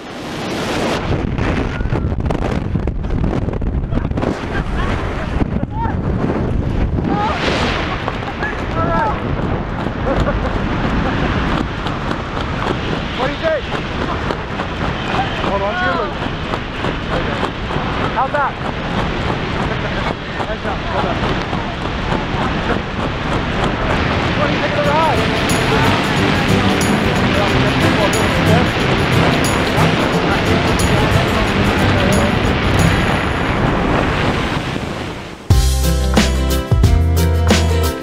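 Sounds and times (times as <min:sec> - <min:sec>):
wind buffeting microphone: 0:00.0 - 0:35.5.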